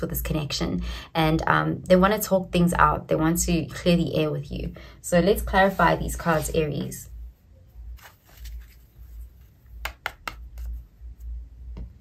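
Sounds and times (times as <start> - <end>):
low steady hum: 0.0 - 12.0
tarot cards clicking and tapping: 9.6 - 10.9.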